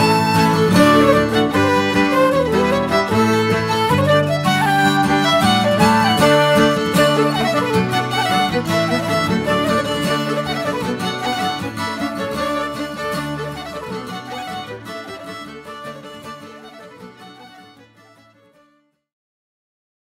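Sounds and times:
acoustic guitar: 0:00.0 - 0:18.6
fiddles and flute folk tune: 0:00.0 - 0:18.8.

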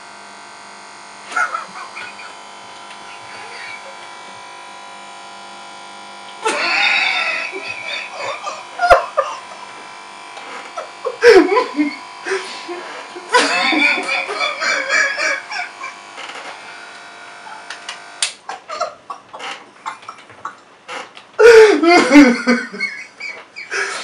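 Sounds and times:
electric hair clippers buzzing: 0:00.0 - 0:21.4
man laughing: 0:01.3 - 0:02.5, 0:03.1 - 0:04.0, 0:06.4 - 0:09.7, 0:10.5 - 0:16.4, 0:18.4 - 0:24.0.

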